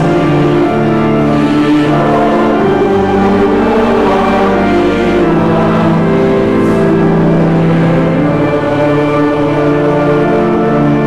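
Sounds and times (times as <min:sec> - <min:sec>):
hymn final chord sustained: 0:00.0 - 0:11.0.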